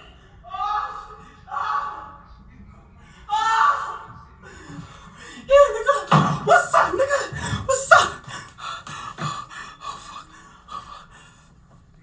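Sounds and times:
man panting: 7.3s - 11.6s.

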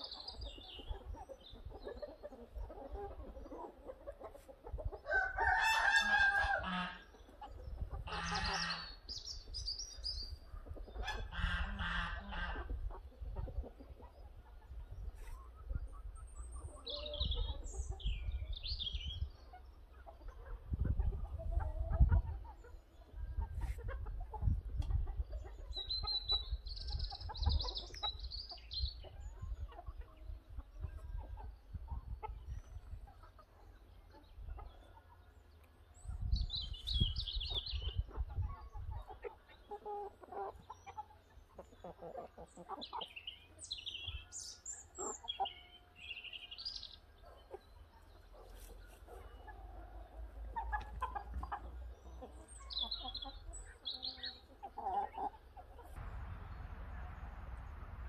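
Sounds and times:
birds chirping: 0.0s - 20.8s, 22.4s - 58.0s
fowl clucking: 0.7s - 9.1s, 10.6s - 16.0s, 37.6s - 43.2s, 48.4s - 56.1s
low rumble: 56.0s - 58.0s.

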